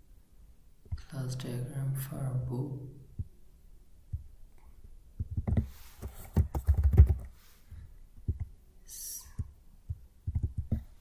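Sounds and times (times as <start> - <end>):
keyboard typing: 5.2 - 7.3, 9.4 - 11.0.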